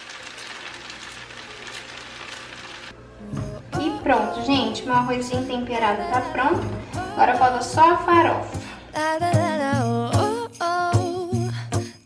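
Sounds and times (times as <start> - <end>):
rice sizzling in a pot: 0.0 - 2.9
background music: 2.9 - 12.0.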